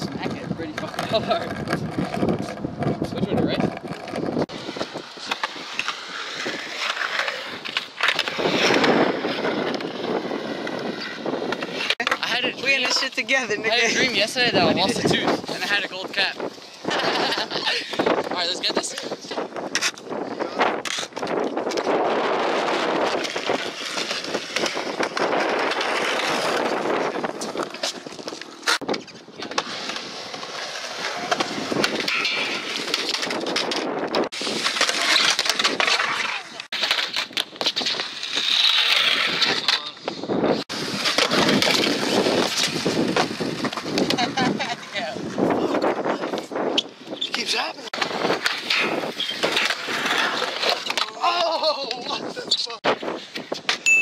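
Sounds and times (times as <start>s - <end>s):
skateboard wheels rolling on concrete: 0.0s - 54.0s
people's voices: 50.9s - 52.8s.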